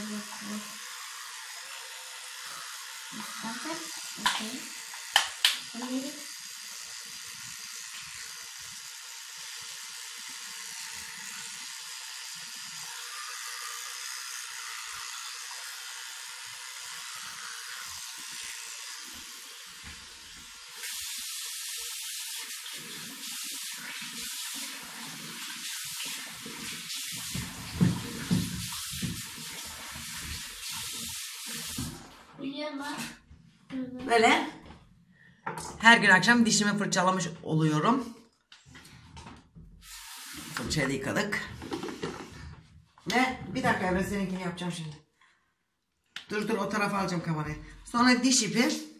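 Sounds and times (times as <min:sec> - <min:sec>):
electric toothbrush running: 0:00.0 - 0:32.3, 0:39.8 - 0:44.6, 0:46.3 - 0:48.9
tap running into sink: 0:26.6 - 0:32.1
knocks and splashes: 0:27.2 - 0:30.5.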